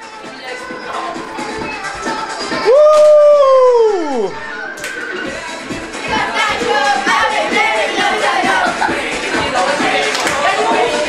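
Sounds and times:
music: 0:00.0 - 0:11.0
person howling whoop: 0:02.6 - 0:04.4.

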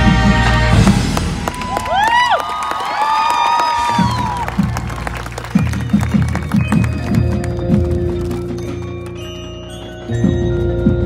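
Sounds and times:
marching band playing: 0:00.0 - 0:09.6.

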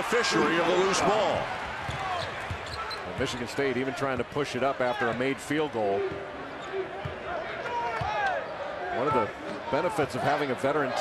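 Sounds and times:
murmur of arena crowd: 0:00.0 - 0:11.0.

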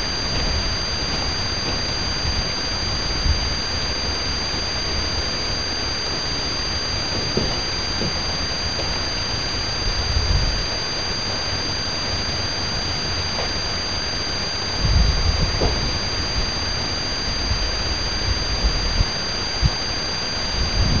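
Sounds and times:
high-pitched whine: 0:00.0 - 0:21.0
wind buffeting microphone: 0:14.7 - 0:16.6, 0:20.4 - 0:21.0.

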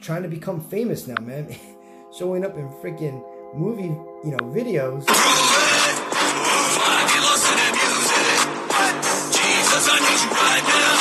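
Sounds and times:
electronic music: 0:00.8 - 0:11.0
harsh noisy video soundtrack: 0:05.1 - 0:11.0.

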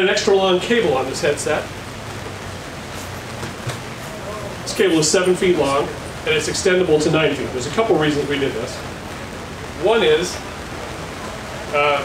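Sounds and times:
background rumble and hiss: 0:00.0 - 0:12.0.

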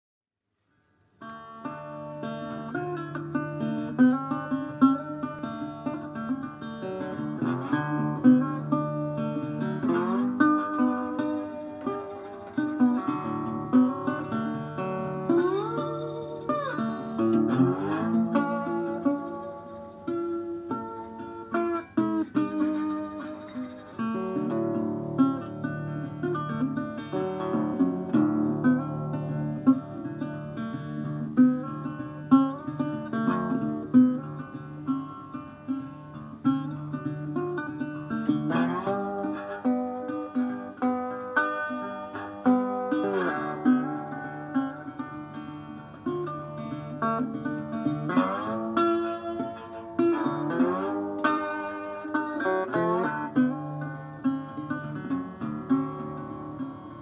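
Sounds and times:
slide blues guitar: 0:01.2 - 0:57.0.

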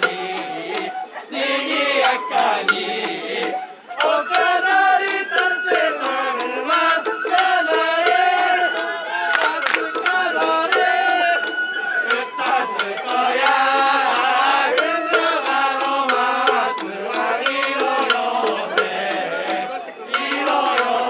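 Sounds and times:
sliding melody of festival music: 0:00.0 - 0:21.0.

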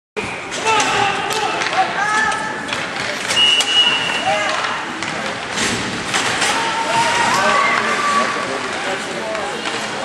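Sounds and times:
crowd din: 0:00.2 - 0:10.0
hockey sticks and puck clacking: 0:00.5 - 0:10.0.

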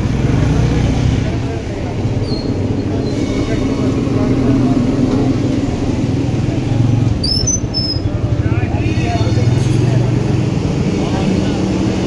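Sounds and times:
crowd voices: 0:00.0 - 0:12.0
traffic engine noise: 0:00.0 - 0:12.0.

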